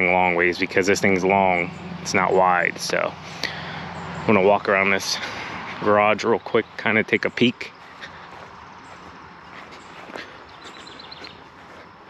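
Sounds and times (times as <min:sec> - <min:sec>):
footsteps on grass: 0:02.0 - 0:12.0
faint bird trill: 0:06.0 - 0:12.0.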